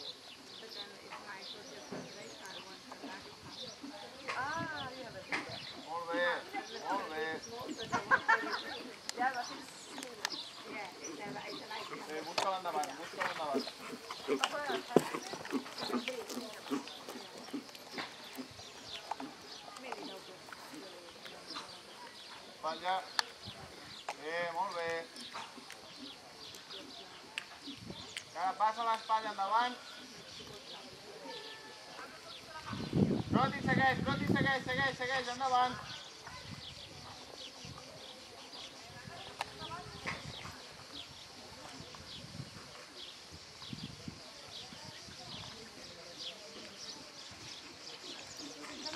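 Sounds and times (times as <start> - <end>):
birds chirping: 0.0 - 48.9
hoofbeats on sand: 2.1 - 22.3.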